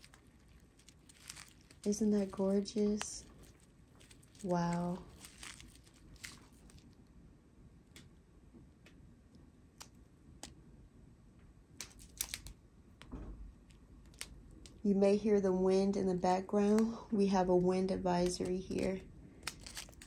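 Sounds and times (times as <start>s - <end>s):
plastic bags crinkling: 0.0s - 7.0s, 11.8s - 12.5s, 18.2s - 20.0s.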